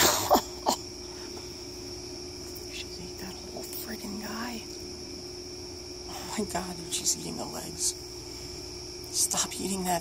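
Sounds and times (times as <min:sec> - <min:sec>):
person coughing: 0:00.0 - 0:00.8
crickets chirping: 0:00.0 - 0:10.0.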